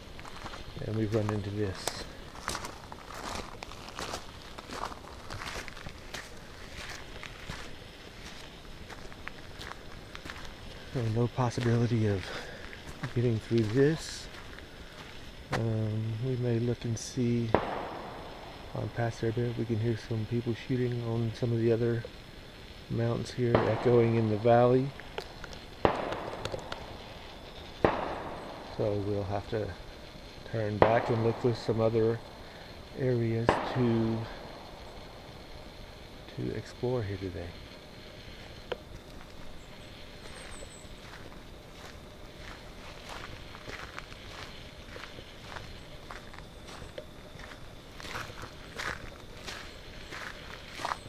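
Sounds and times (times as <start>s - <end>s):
footsteps on gravel road: 0.0s - 15.8s, 23.2s - 29.9s, 38.3s - 51.0s
distant echoing gunshots: 17.5s - 18.8s, 23.5s - 24.4s, 25.8s - 28.8s, 30.8s - 31.9s, 33.4s - 35.2s.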